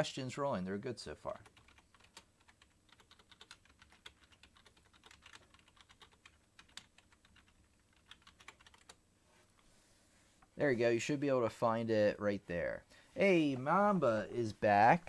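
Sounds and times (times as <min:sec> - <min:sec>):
typing on computer keyboard: 0:01.3 - 0:09.0.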